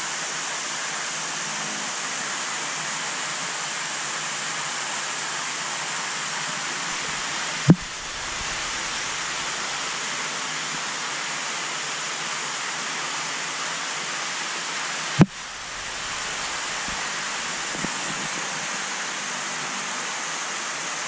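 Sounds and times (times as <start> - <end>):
running water rushing: 0.0 - 21.0
sharp knock: 7.7 - 8.6.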